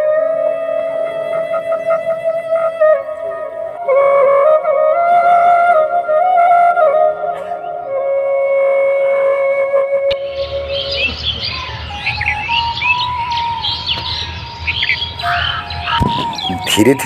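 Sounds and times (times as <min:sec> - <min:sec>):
soft flute note: 0:00.0 - 0:17.0
birds chirping: 0:10.1 - 0:17.0.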